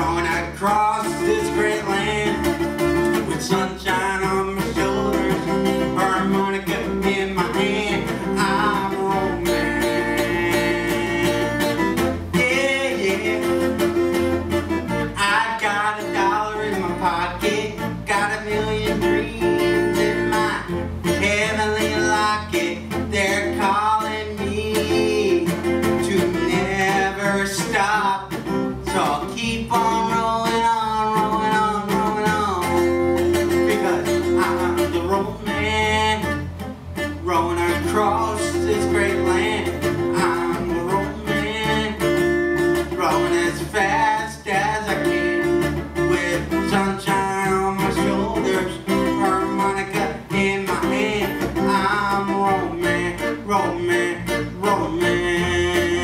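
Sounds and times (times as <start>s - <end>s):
electric bass guitar: 0.0s - 56.0s
strummed acoustic guitar: 0.0s - 56.0s.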